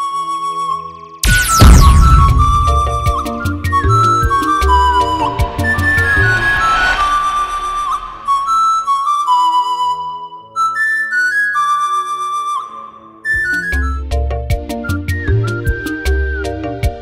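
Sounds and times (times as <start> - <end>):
flute melody: 0.0 - 17.0
low drum beats: 1.5 - 8.6.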